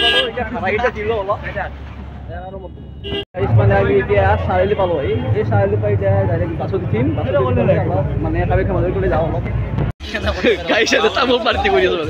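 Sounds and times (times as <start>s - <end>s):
vehicle horn: 0.0s - 0.4s, 2.8s - 3.3s
people's voices: 0.0s - 12.0s
street traffic: 0.0s - 12.0s.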